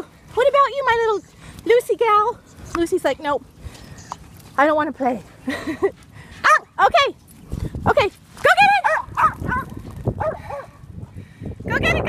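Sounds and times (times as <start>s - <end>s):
small dogs yapping: 8.7s - 10.8s.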